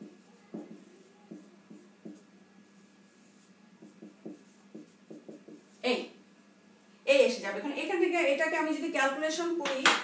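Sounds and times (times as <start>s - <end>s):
marker writing on whiteboard: 0.0s - 5.8s.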